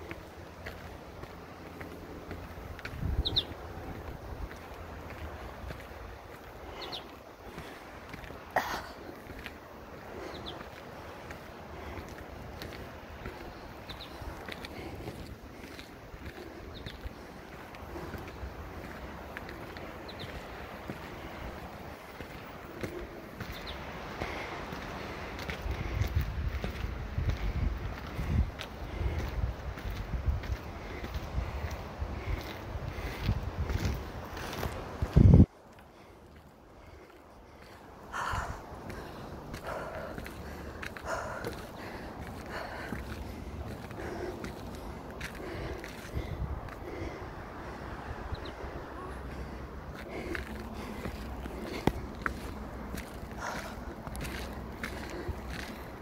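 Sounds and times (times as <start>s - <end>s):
footsteps on dirt path: 0.0s - 56.0s
wind rumbling on microphone: 0.0s - 56.0s.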